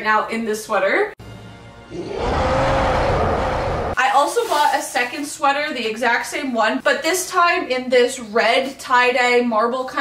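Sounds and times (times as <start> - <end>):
loud rough roaring bellow: 1.8 - 4.0.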